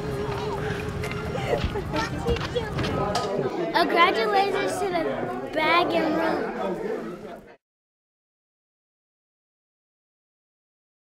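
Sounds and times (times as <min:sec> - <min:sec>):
people chatting: 0:00.0 - 0:07.6.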